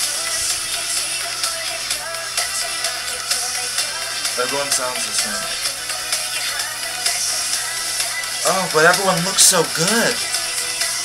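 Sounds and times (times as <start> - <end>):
electronic pop dance track: 0.0 - 11.0
pitch-corrected woman singing: 0.0 - 11.0.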